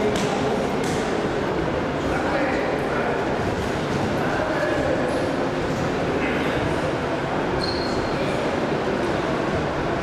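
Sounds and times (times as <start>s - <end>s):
background hubbub: 0.0s - 10.0s.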